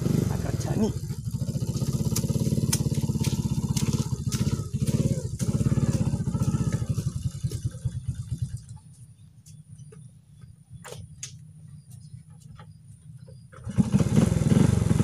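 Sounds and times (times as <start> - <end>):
small motorcycle engine puttering: 0.0 - 15.0.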